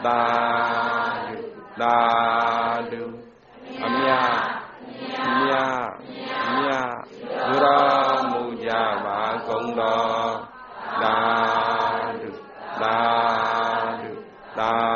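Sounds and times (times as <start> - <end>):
person chanting: 0.0 - 14.9.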